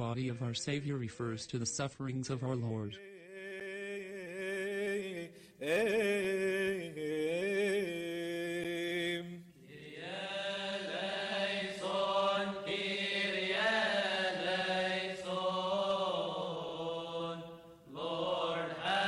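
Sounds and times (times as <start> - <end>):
men chanting a hymn: 2.5 - 19.0.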